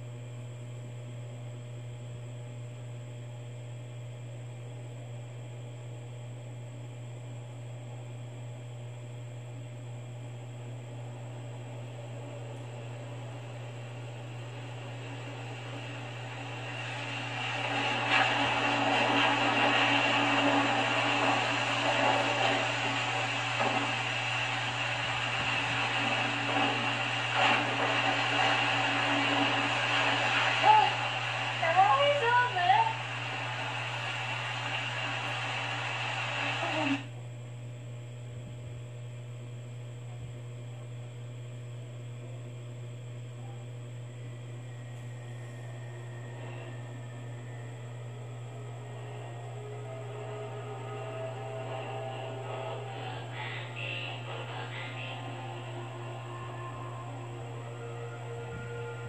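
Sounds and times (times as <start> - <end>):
film soundtrack through tv speakers: 0.0 - 37.2, 41.6 - 59.0
steady low hum: 0.0 - 59.0.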